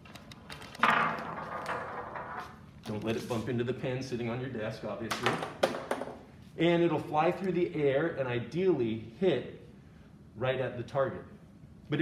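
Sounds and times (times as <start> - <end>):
ball rolling rumble on wooden rails: 0.5 - 2.7.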